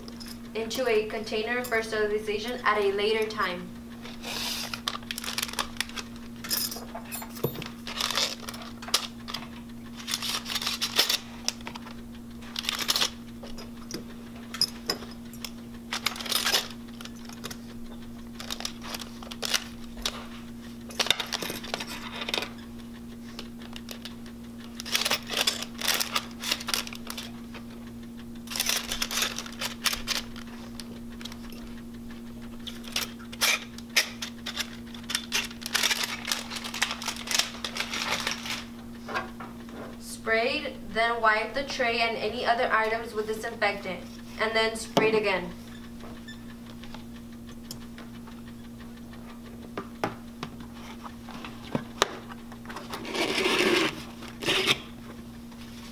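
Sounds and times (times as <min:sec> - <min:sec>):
low machine hum: 0:00.0 - 0:55.9
metal instruments clicking: 0:04.7 - 0:20.2, 0:20.8 - 0:27.4, 0:28.2 - 0:39.7
plastic pouch rustling: 0:35.2 - 0:38.7.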